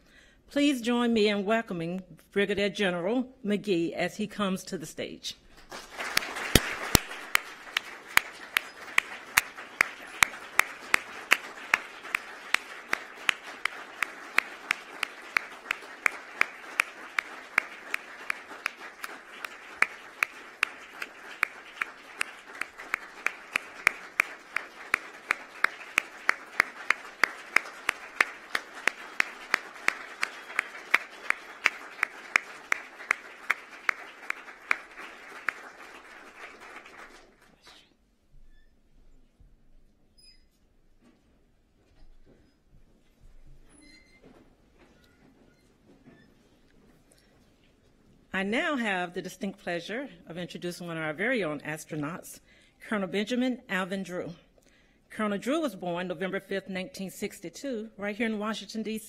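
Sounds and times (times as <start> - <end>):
audience applauding: 5.6 - 37.8
close hands clapping evenly: 5.6 - 37.9.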